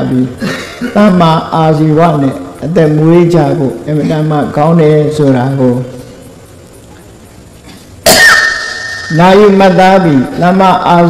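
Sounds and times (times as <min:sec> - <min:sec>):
man coughing: 0:00.3 - 0:01.1.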